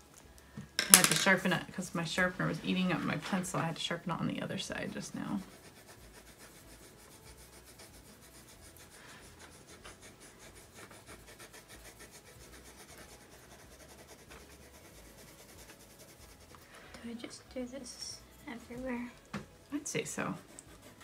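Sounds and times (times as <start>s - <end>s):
pencils scratching on paper: 0.8s - 19.1s, 19.8s - 21.0s.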